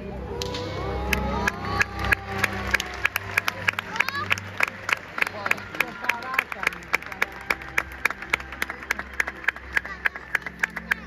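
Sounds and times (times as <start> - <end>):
low stage music: 0.0 - 11.0
audience clapping: 0.4 - 11.0.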